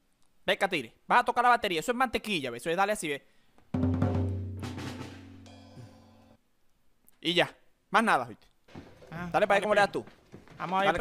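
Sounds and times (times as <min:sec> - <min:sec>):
drum kit hits ringing: 0:03.8 - 0:06.4.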